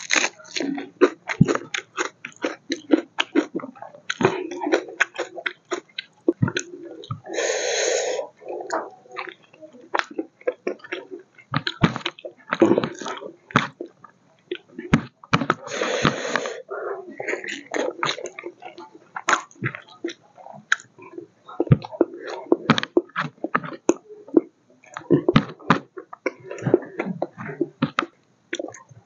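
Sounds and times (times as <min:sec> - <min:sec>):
person chewing with mouth smacking: 0:00.0 - 0:29.0.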